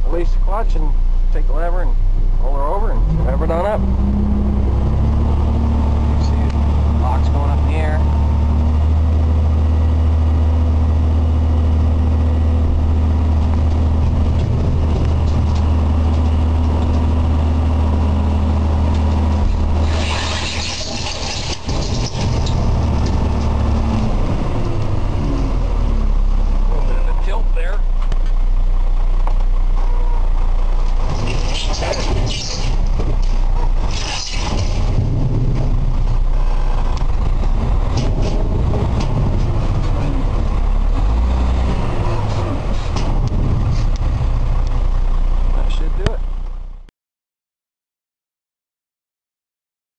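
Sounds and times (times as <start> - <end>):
diesel truck engine running: 0.0 - 46.9
bursts of hissing: 19.8 - 22.2.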